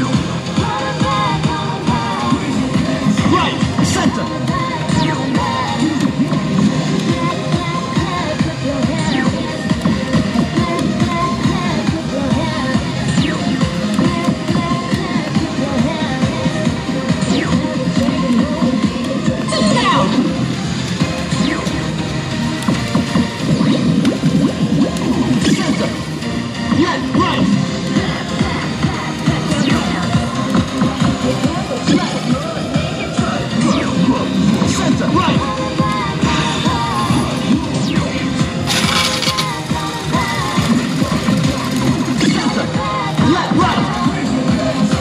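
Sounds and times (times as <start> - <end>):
din of busy gaming hall: 0.0 - 45.0
electronic game music: 1.2 - 31.2, 36.6 - 42.6
game sound effects: 38.6 - 41.2.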